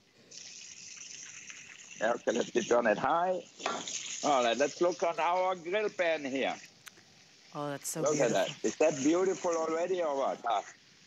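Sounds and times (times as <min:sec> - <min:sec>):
oil sizzling in a hot skillet: 0:00.3 - 0:07.5, 0:09.4 - 0:11.0.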